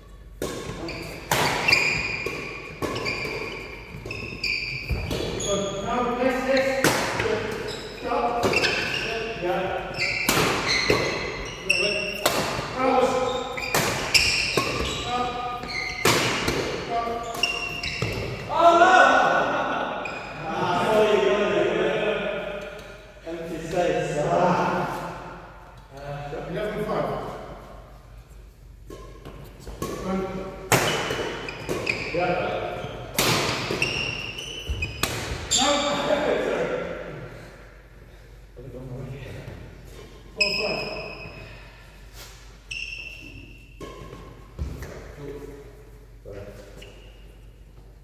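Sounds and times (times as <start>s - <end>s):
racket hitting shuttlecock: 0.3s - 5.4s, 6.8s - 7.7s, 10.0s - 11.4s, 12.0s - 12.8s, 13.6s - 18.5s, 28.8s - 32.1s, 33.1s - 35.5s
shoe squeaks on court floor: 0.8s - 5.8s, 7.6s - 9.2s, 9.9s - 12.3s, 13.2s - 16.5s, 17.2s - 18.4s, 30.8s - 32.2s, 32.8s - 36.0s, 40.4s - 41.5s, 42.7s - 44.3s, 46.6s - 47.6s.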